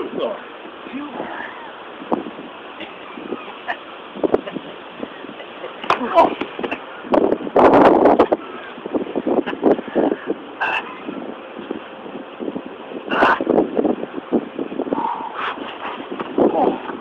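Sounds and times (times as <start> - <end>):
wind noise on microphone: 0.0 - 17.0.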